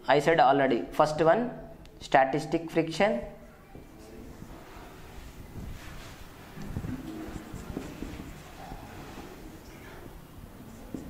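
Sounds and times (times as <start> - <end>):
marker scratching on whiteboard: 6.8 - 9.5.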